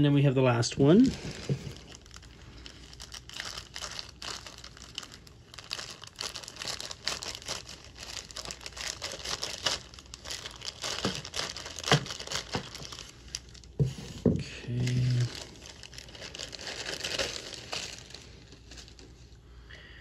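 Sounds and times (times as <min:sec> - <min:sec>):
plastic bag crinkling: 0:00.9 - 0:19.4
scissors cutting plastic: 0:10.4 - 0:13.0.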